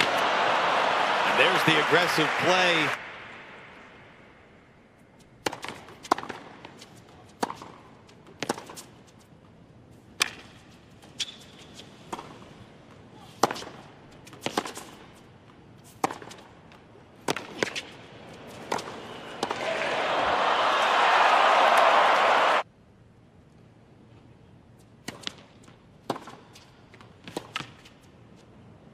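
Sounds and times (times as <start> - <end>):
crowd cheering and applauding: 0.0 - 3.1, 19.4 - 22.6
racket striking tennis ball: 5.4 - 8.9, 12.1 - 12.5, 13.3 - 15.0, 15.8 - 16.5, 17.2 - 19.7, 25.0 - 26.5
tennis ball bouncing: 5.4 - 8.9, 12.1 - 12.5, 13.4 - 15.0, 15.8 - 16.5, 17.2 - 19.6, 25.0 - 27.9.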